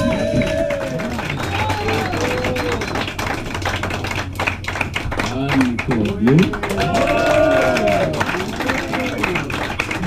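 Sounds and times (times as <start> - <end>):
audience hand claps: 0.0 - 10.0.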